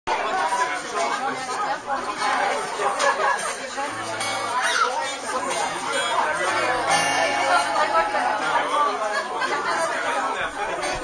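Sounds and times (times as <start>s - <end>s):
audience chatter: 0.1s - 11.0s.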